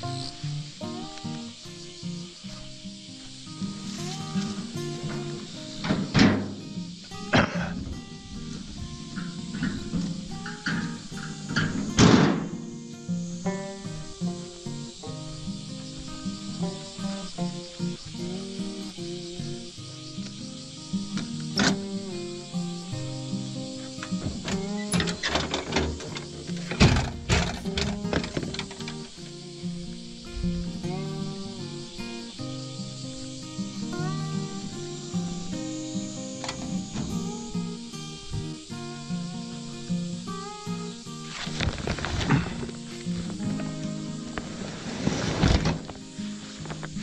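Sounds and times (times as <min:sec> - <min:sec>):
background music held notes: 0:00.0 - 0:47.0.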